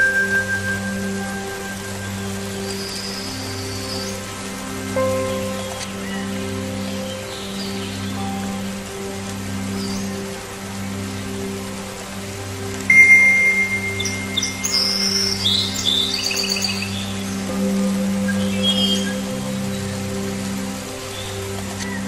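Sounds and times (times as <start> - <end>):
soft ambient music: 0.0 - 22.0
songbirds chirping: 0.8 - 22.0
long steady whistle note: 12.9 - 15.1.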